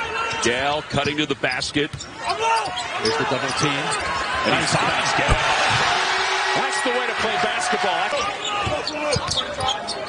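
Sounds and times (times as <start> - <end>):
arena noise: 0.0 - 10.0.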